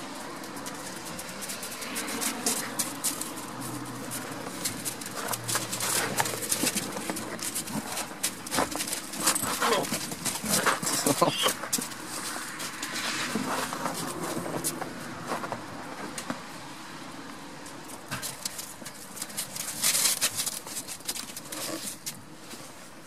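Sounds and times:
hooves crunching on frozen snow: 0.0 - 16.0.

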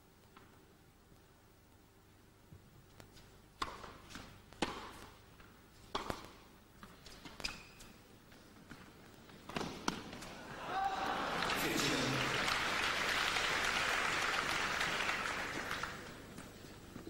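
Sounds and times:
racket striking tennis ball: 3.6 - 5.2, 5.9 - 7.6, 9.4 - 10.3
tennis ball bouncing: 3.6 - 7.6, 8.7 - 10.3
crowd applause: 10.4 - 16.2.

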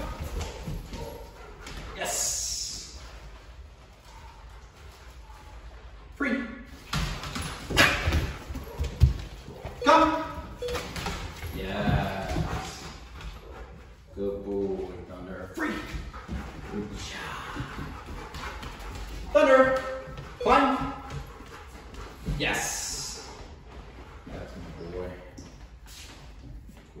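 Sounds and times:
dog paws tapping on floor: 0.0 - 2.0, 6.8 - 27.0.

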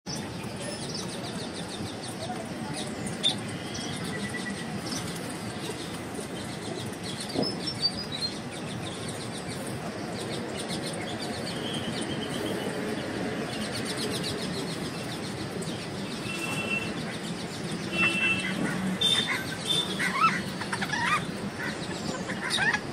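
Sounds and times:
steady background noise: 0.1 - 22.9.

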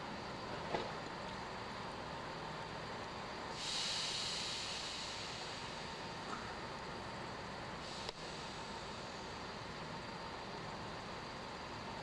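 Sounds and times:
compressed air hissing: 3.5 - 6.2, 7.8 - 9.5.

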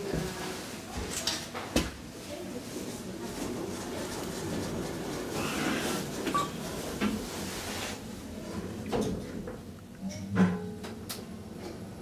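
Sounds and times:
elevator ride noise: 2.7 - 9.8.

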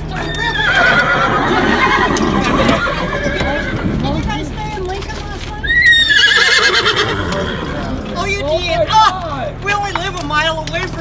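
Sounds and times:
people talking: 0.0 - 6.0, 6.9 - 11.0
horse whinnying: 0.1 - 4.0, 5.6 - 8.2.

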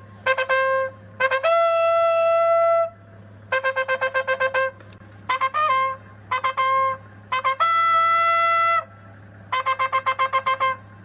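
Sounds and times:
brass repeated notes: 0.2 - 2.9, 5.3 - 8.8.

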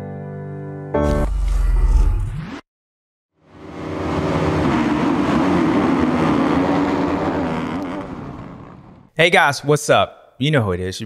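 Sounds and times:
engine running: 3.4 - 9.0.

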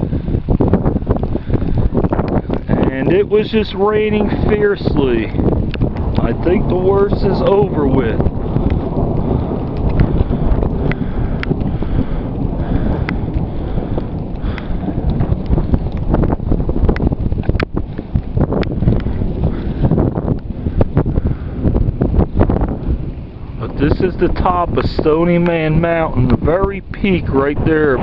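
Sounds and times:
wind buffeting microphone: 0.0 - 28.0.

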